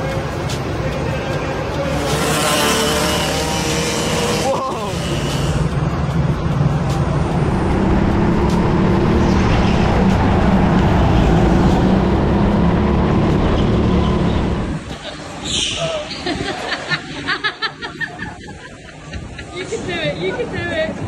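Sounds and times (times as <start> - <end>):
go-kart engine running: 1.8 - 5.8.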